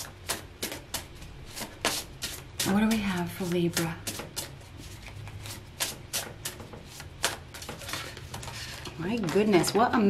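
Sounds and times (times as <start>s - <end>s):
cards being shuffled: 0.1s - 9.6s.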